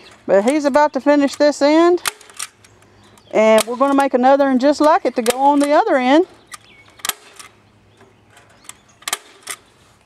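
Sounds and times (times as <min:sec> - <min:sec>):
sharp clicks on wire frame: 0:00.0 - 0:09.7.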